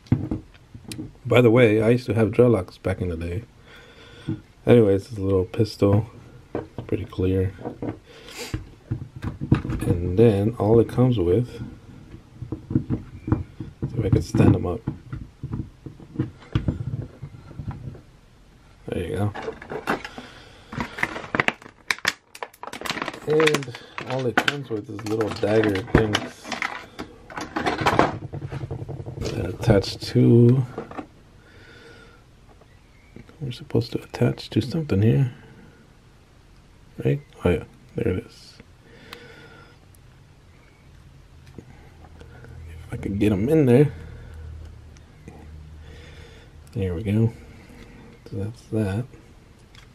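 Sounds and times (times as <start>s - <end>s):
low room hum: 0.0s - 49.9s.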